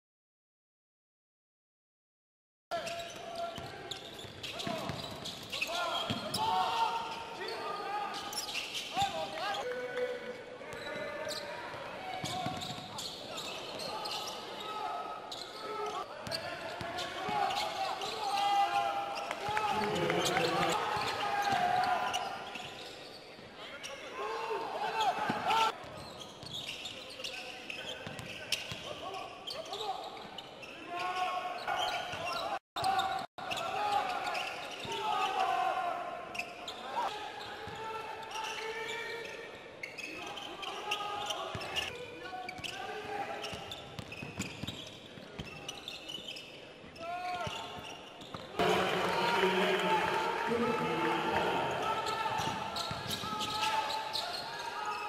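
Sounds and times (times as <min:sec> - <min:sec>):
voices echoing in hall: 0:02.7 - 0:55.0.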